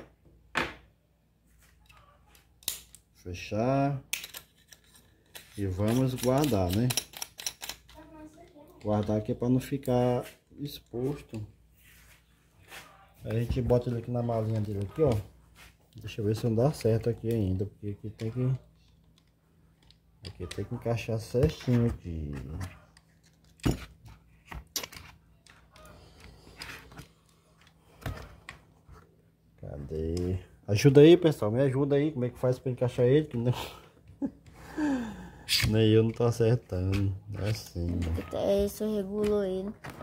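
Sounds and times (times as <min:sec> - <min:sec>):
person speaking: 0:34.7 - 0:39.8.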